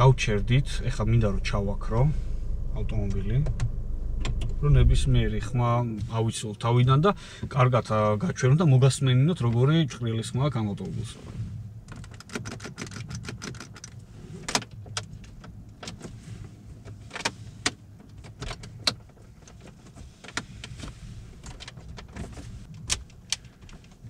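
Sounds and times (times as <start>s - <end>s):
low road hum: 0.0s - 12.0s.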